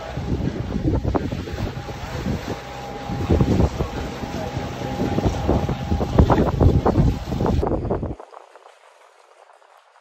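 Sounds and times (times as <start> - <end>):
wind buffeting microphone: 0.0 - 8.8.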